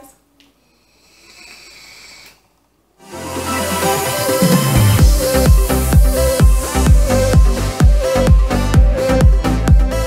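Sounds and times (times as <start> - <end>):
airy hiss of vape draw: 0.9 - 7.8.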